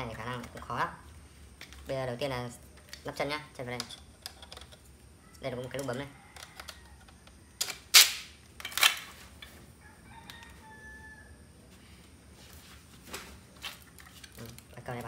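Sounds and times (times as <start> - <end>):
plastic parts knocking and clicking: 2.8 - 4.9.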